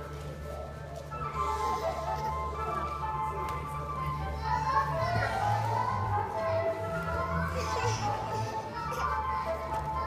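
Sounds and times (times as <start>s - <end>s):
children chattering and calling out: 0.0s - 10.0s.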